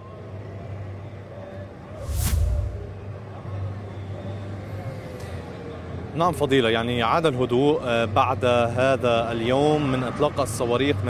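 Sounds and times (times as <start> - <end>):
low hum of cars: 0.0 - 11.0.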